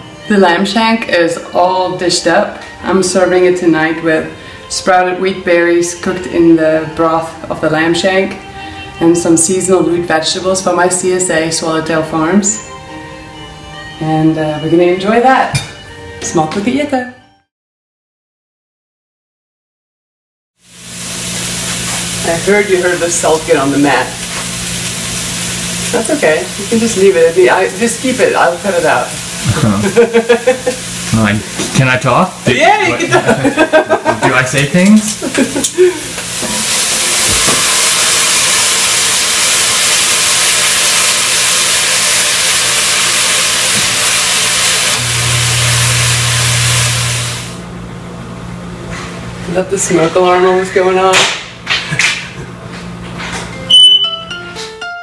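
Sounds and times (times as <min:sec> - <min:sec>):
piano music: 0:00.0 - 0:17.4, 0:21.2 - 0:34.7, 0:53.5 - 0:55.0
meat sizzling in a pot: 0:20.6 - 0:47.7
smoke alarm beep: 0:53.7 - 0:54.4.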